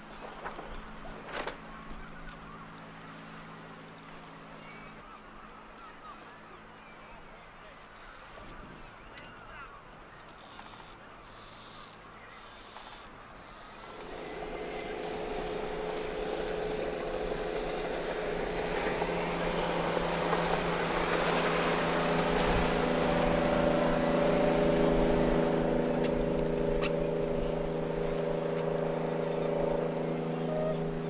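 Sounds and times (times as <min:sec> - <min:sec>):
speedboat engine drone: 0:00.0 - 0:31.0.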